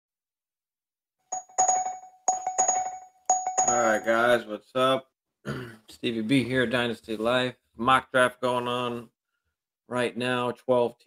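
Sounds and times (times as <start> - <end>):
bell-like chime: 1.3 - 4.3.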